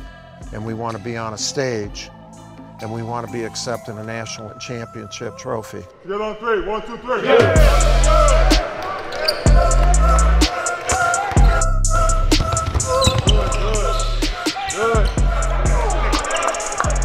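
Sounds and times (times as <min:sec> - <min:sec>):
music with deep bass: 0:07.6 - 0:08.7, 0:09.5 - 0:10.6, 0:11.3 - 0:12.6, 0:13.2 - 0:17.0
basketballs bouncing on gym floor: 0:12.3 - 0:13.8.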